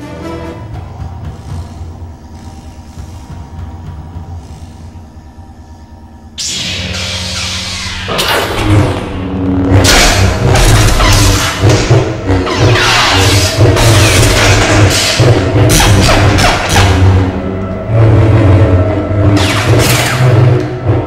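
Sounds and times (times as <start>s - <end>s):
lightsaber hums: 0.0s - 21.0s
orchestral score: 0.0s - 21.0s
loud electric buzz: 0.7s - 21.0s.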